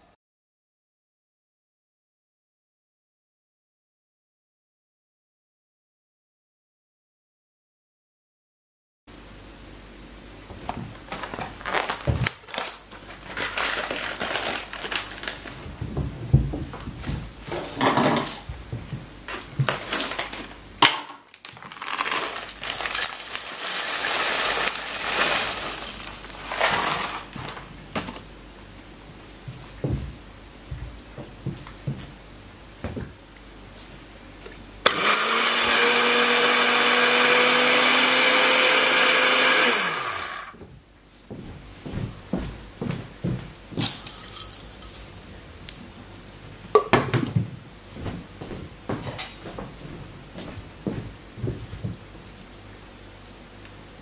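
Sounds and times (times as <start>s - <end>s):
crackers crunching in plastic package: 11.1s - 15.6s, 19.3s - 20.6s, 21.3s - 28.3s
blender grinding: 21.7s - 27.3s, 34.8s - 40.6s.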